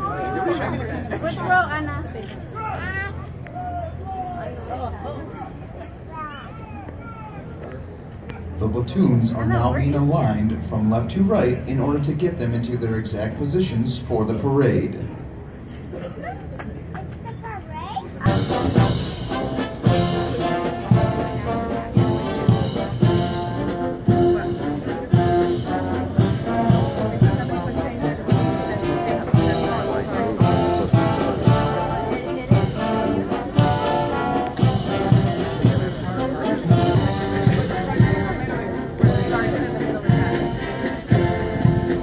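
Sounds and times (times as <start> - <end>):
brass band playing: 18.2 - 42.0
steady drum beat: 18.2 - 42.0.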